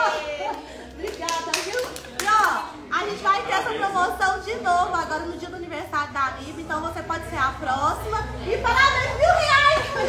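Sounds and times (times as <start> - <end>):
voices: 0.0 - 10.0
hand clapping: 0.4 - 2.7.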